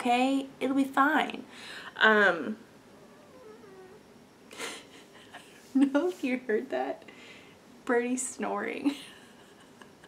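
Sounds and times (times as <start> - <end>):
cat snoring: 2.9 - 4.1.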